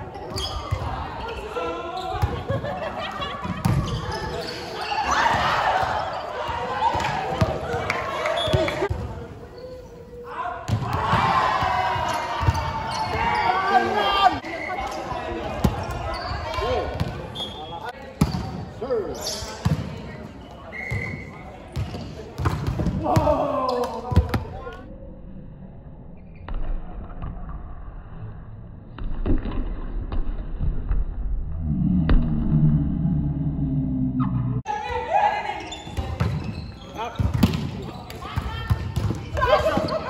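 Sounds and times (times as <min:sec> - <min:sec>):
players shouting calls: 0:10.2 - 0:15.6, 0:23.0 - 0:24.2.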